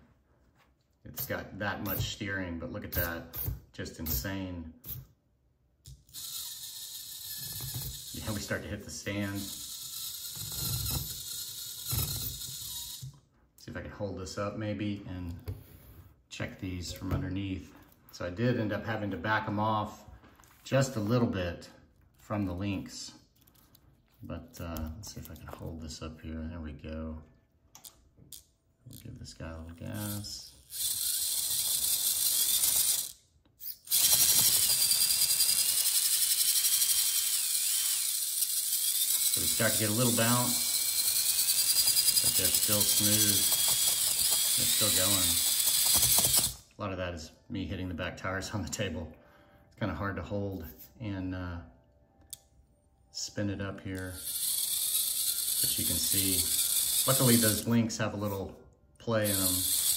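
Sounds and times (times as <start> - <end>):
electric motor whirring with gear chatter: 6.1 - 13.1, 30.0 - 33.2, 33.8 - 46.6, 54.0 - 57.7, 59.2 - 59.9.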